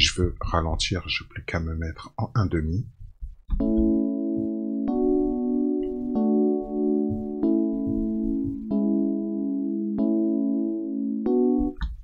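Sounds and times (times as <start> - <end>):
software instrument chords: 3.5 - 12.0.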